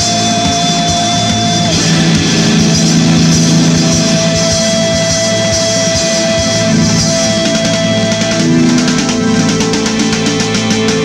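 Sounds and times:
bass and drums: 0.0s - 11.0s
electric guitar lead note: 0.0s - 11.0s.

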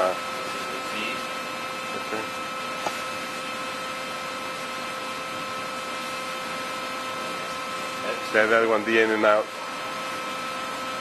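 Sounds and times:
grinding machine hum and hiss: 0.0s - 11.0s.

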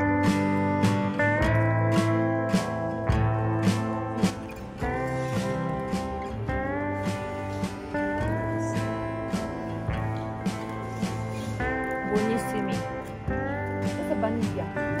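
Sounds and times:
guitar music with sliding notes: 0.0s - 15.0s
steady beat: 0.0s - 15.0s.

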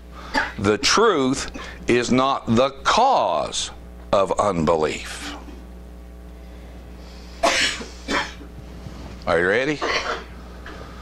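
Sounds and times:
man coughing: 0.3s - 0.6s, 7.4s - 8.5s, 9.8s - 10.3s.

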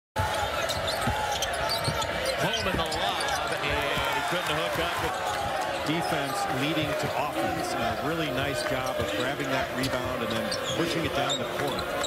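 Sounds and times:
crowd noise: 0.2s - 12.0s
broadcast voices: 0.8s - 12.0s.

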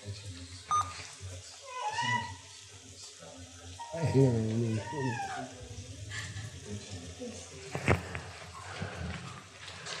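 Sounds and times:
cat meowing: 1.6s - 2.4s, 3.9s - 5.6s.

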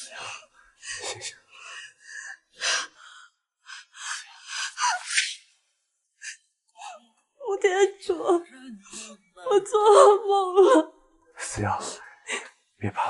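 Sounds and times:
woman whimpering: 8.1s - 10.9s.

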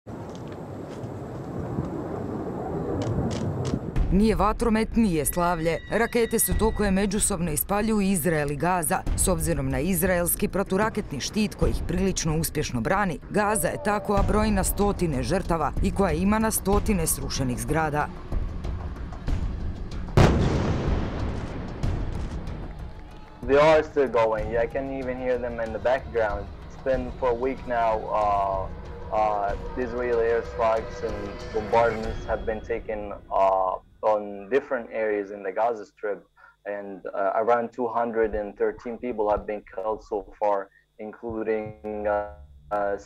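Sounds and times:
low rumble of rockets in flight: 0.1s - 4.0s
smaller sharp blast: 20.2s - 22.4s
bomb explosion with low rumble: 20.2s - 22.6s.

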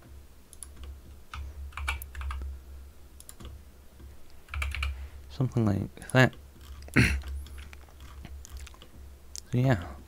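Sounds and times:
low steady hum: 0.0s - 10.0s
faint clicks: 0.5s - 2.5s, 3.2s - 3.6s.

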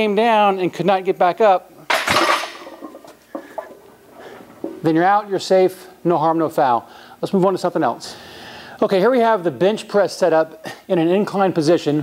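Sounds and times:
faint knocks and rustles: 2.2s - 5.0s
man speaking: 4.8s - 8.2s, 8.8s - 12.0s.

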